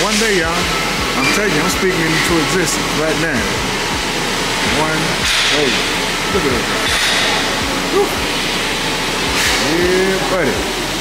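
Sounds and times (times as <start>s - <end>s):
loud rushing noise: 0.0s - 11.0s
man exclaiming woo: 7.9s - 8.2s.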